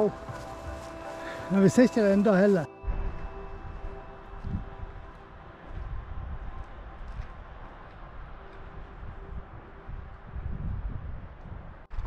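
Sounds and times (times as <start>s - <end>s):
wind buffeting microphone: 2.8s - 12.0s.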